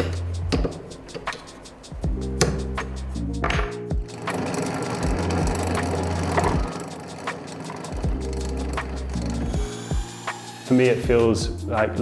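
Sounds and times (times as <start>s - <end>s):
background music with steady beat: 0.0s - 12.0s
drill press grinding rasp: 4.0s - 10.8s.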